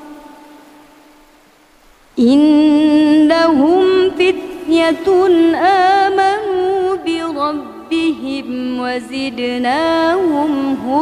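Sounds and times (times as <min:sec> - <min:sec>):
reverberating recitation note: 0:00.0 - 0:01.2
faint hiss: 0:00.0 - 0:11.0.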